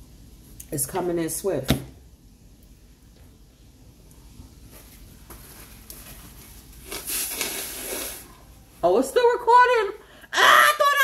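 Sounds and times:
person blowing nose: 6.9s - 8.3s.

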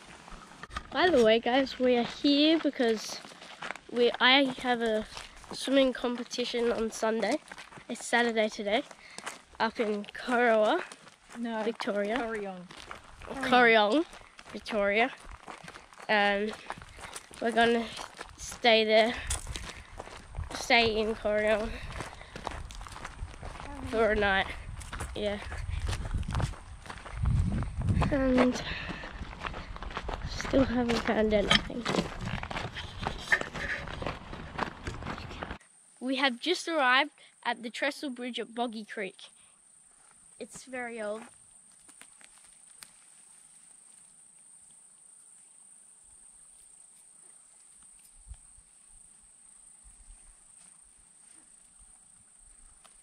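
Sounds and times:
footsteps on dirt and leaves: 0.0s - 35.6s, 40.5s - 43.9s
soft low thumps: 22.6s - 35.6s.

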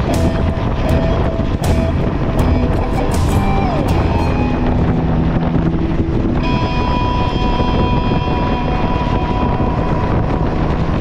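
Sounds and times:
motorcycle engine running: 0.0s - 11.0s
steady high tone: 0.0s - 11.0s
wind rushing over microphone: 0.0s - 11.0s.

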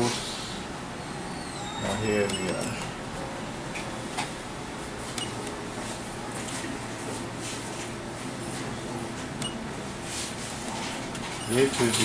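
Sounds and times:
room and recording hiss: 0.0s - 12.0s.

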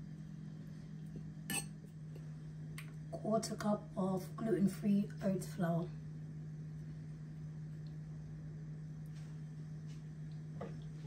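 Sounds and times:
low-pitched hum: 0.0s - 11.0s.

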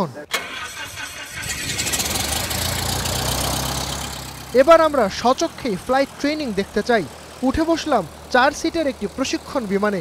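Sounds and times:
propeller plane engine running: 0.8s - 10.0s.

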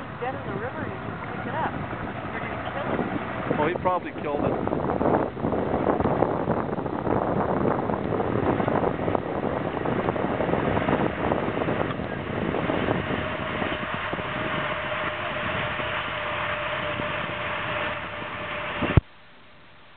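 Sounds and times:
wind buffeting microphone: 0.0s - 19.0s
faint steady hum: 0.0s - 19.9s.

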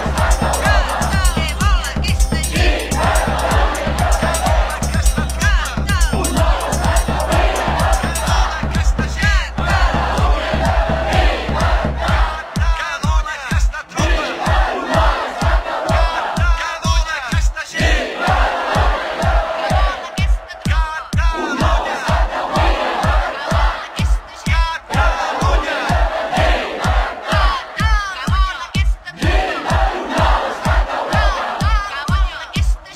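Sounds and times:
bass drum beating: 0.0s - 32.8s
crowd chanting in unison: 0.0s - 32.9s.

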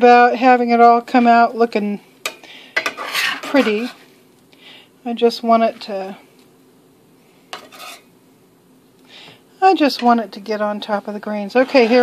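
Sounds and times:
utensil scraping pan: 2.8s - 4.0s, 7.6s - 8.1s, 11.4s - 12.0s.

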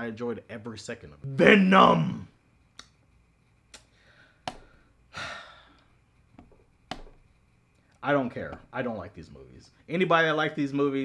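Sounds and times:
man sighing: 5.1s - 5.8s
computer mouse clicks: 6.4s - 7.2s.

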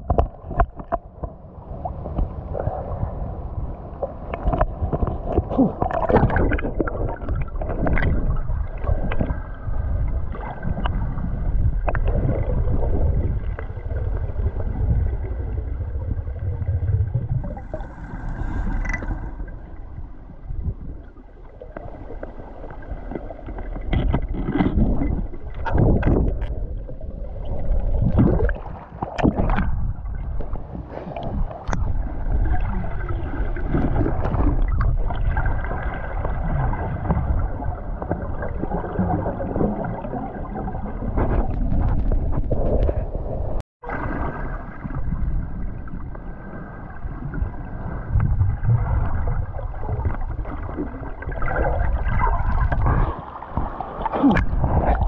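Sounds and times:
underwater rumble of moving water: 0.0s - 55.0s
water bubbling and splashing: 0.0s - 55.0s.

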